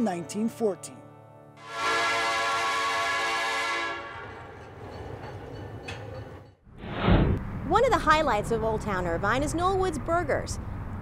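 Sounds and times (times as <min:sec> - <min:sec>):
train whistle blowing: 0:01.6 - 0:04.5.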